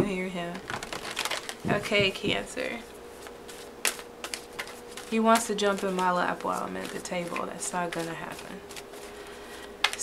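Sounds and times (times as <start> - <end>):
faint steady hum: 0.0 - 10.0
cards clicking and tapping: 3.5 - 9.1.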